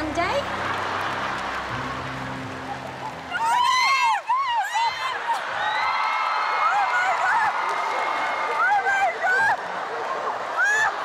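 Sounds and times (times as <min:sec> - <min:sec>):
music: 0:00.0 - 0:03.9
audience applauding: 0:00.0 - 0:11.0
audience shrieking and laughing: 0:00.4 - 0:11.0.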